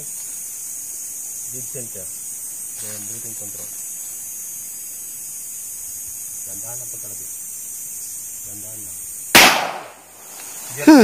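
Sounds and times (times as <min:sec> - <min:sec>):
handgun shot: 0:09.4 - 0:10.0.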